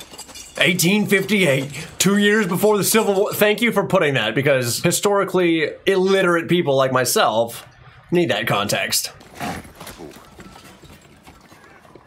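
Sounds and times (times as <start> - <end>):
hooves clip-clopping: 0.0 - 3.4, 9.1 - 12.0.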